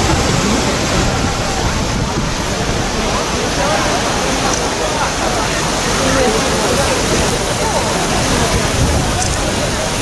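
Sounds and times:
river water rushing over weir: 0:00.0 - 0:10.0.

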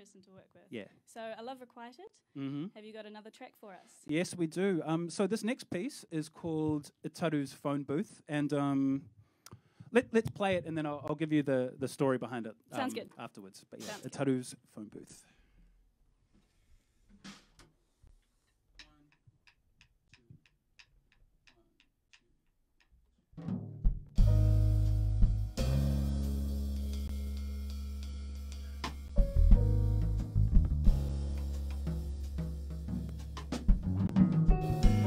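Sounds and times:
drum kit: 0:17.2 - 0:17.6, 0:23.4 - 0:35.0
keyboard chords: 0:24.2 - 0:32.3, 0:34.1 - 0:35.0
electric bass notes: 0:24.2 - 0:35.0.

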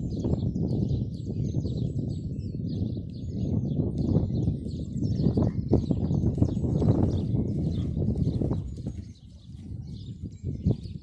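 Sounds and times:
birds chirping: 0:00.0 - 0:11.0
horse hooves on sand: 0:03.9 - 0:11.0.

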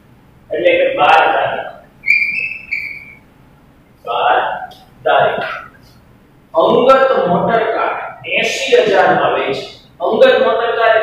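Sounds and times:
chalk squeaking on blackboard: 0:02.0 - 0:03.2.

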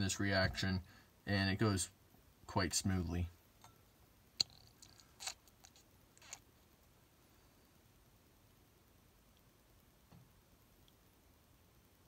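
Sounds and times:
squishy rustles: 0:04.6 - 0:06.5.

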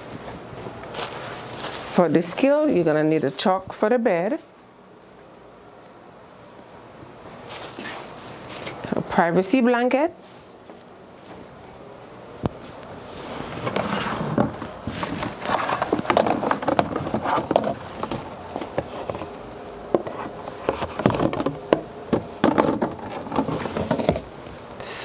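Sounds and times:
plastic scraping and rustling: 0:13.1 - 0:19.4, 0:20.0 - 0:21.6, 0:22.4 - 0:24.3.

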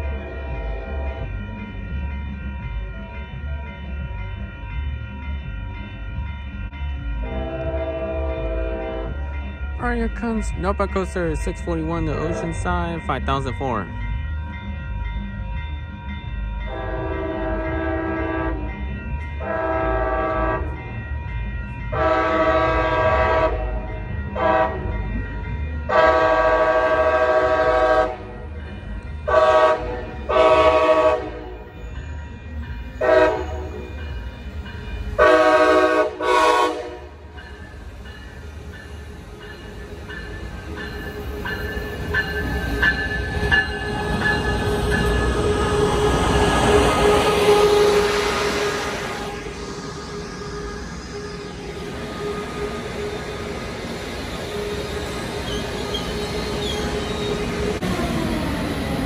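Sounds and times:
train rumbling: 0:00.0 - 0:59.0
train horn: 0:07.2 - 0:09.2, 0:16.7 - 0:18.7, 0:19.4 - 0:20.8, 0:21.9 - 0:24.9, 0:25.9 - 0:28.3, 0:29.3 - 0:31.6, 0:33.0 - 0:33.8, 0:35.2 - 0:37.3, 0:45.4 - 0:49.7.

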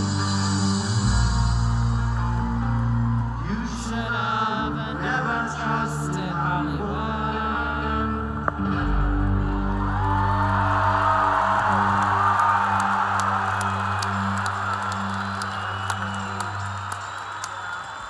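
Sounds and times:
crowd cheering and whooping: 0:00.8 - 0:05.3, 0:09.2 - 0:18.0.

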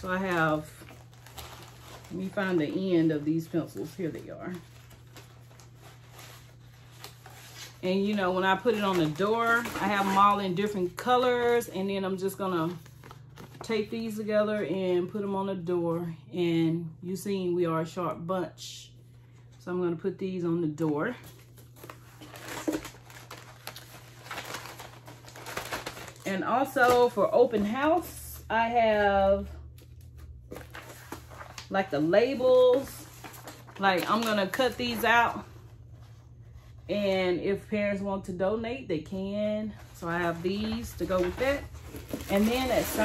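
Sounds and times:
paper rustling: 0:00.0 - 0:11.7, 0:21.2 - 0:28.1, 0:29.8 - 0:36.8, 0:39.7 - 0:43.0.

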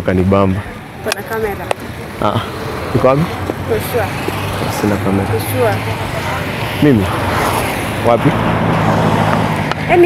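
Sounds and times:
passing traffic: 0:00.0 - 0:10.0.

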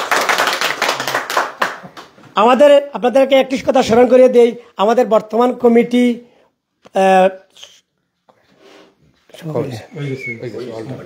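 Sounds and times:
small group clapping: 0:00.0 - 0:02.6.

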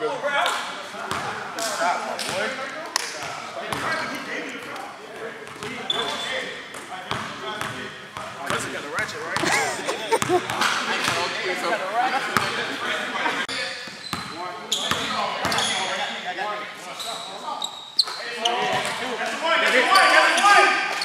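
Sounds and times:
people talking: 0:00.0 - 0:20.9
basketball bouncing on court: 0:05.4 - 0:05.8.

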